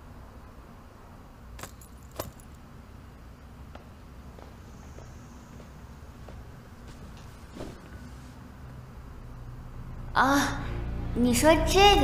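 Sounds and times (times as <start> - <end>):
low steady hum: 0.0 - 12.0
metal strap fittings clinking: 1.6 - 2.6.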